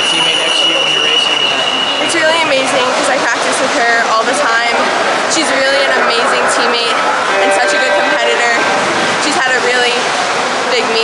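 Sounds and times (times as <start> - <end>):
indoor pool hall noise: 0.0 - 11.0
woman speaking: 2.0 - 10.1, 10.7 - 11.0.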